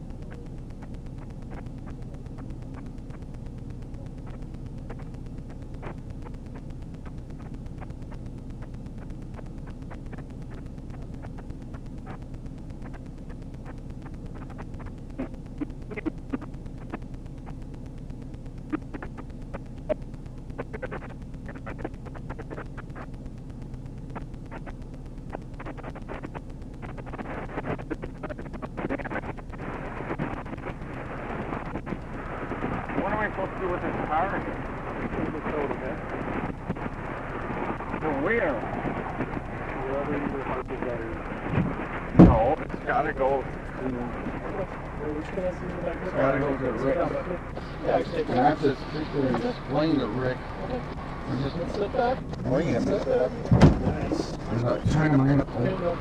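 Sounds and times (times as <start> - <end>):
faint clicks and crackles: 0.0 - 56.0
steady low hum: 0.0 - 56.0.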